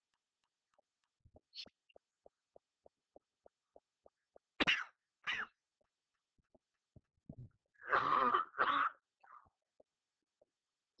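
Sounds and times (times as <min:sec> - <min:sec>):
person coughing: 0:07.8 - 0:09.0.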